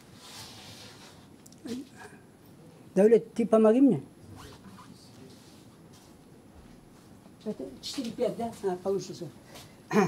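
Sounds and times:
faint rustling and handling: 0:00.0 - 0:02.0.

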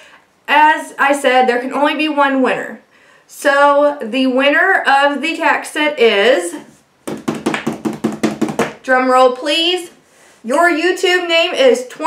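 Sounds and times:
hands patting on a surface: 0:07.1 - 0:08.8.

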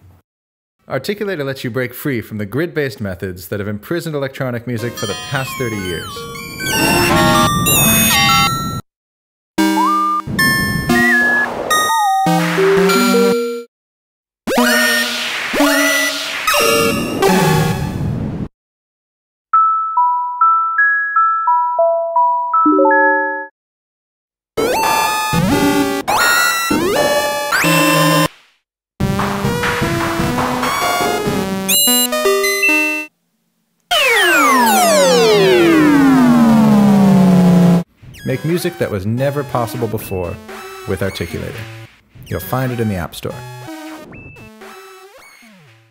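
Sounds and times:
synthesized chime-like tones: 0:04.8 - 0:08.8
synthesized tones sliding down: 0:33.9 - 0:38.4.

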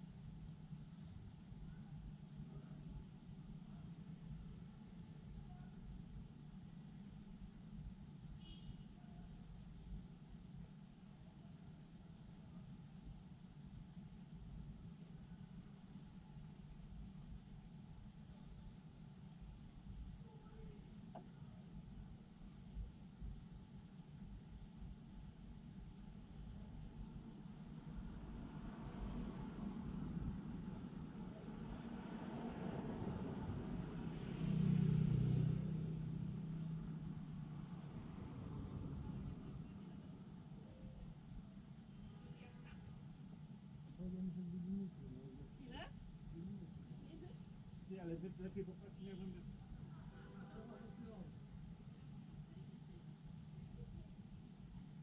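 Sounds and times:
low hum of traffic: 0:00.0 - 0:55.0
car driving past: 0:31.6 - 0:39.8.

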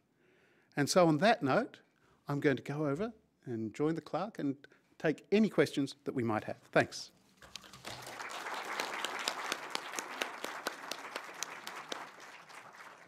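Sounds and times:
audience applauding: 0:07.5 - 0:13.0.

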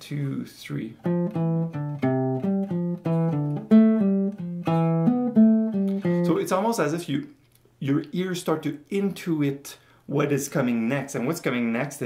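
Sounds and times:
classical guitar plucked notes: 0:01.0 - 0:06.4.

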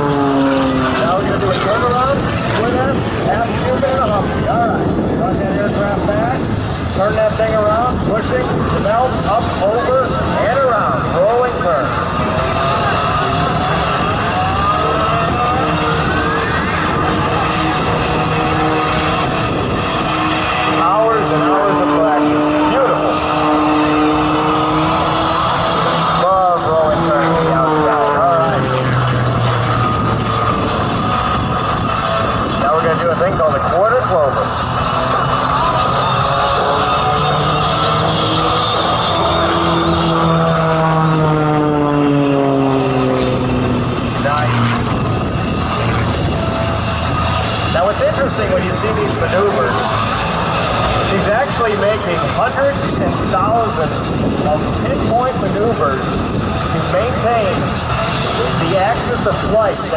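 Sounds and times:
propeller plane engine: 0:00.0 - 0:59.9
music over public address: 0:28.2 - 0:41.8.

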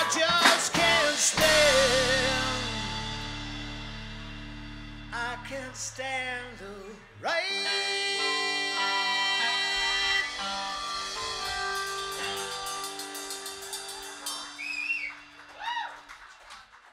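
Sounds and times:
rock band ringing chord: 0:00.0 - 0:05.6, 0:09.6 - 0:14.7.

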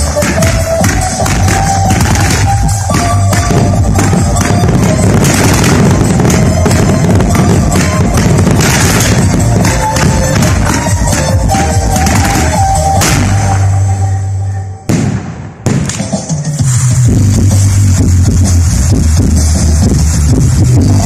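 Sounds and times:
firework bangs: 0:00.0 - 0:14.0, 0:14.9 - 0:16.8
loud music with strong bass: 0:00.0 - 0:15.0, 0:15.7 - 0:21.0.

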